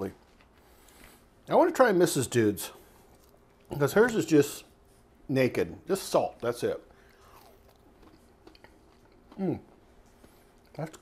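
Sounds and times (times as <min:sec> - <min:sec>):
faint chewing: 0:00.0 - 0:01.5, 0:02.7 - 0:04.2, 0:06.4 - 0:11.0.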